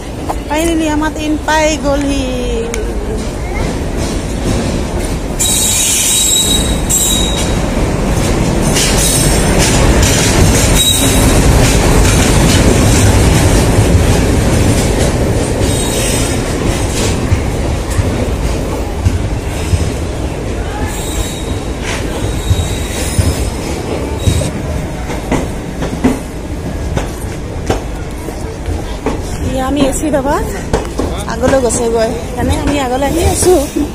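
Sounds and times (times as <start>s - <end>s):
train rumble and wheel clatter: 0.0s - 33.9s
high-pitched wheel squeals: 5.4s - 7.6s.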